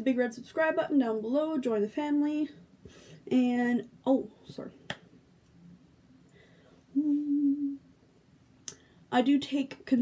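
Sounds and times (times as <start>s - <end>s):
woman humming: 6.9s - 7.9s.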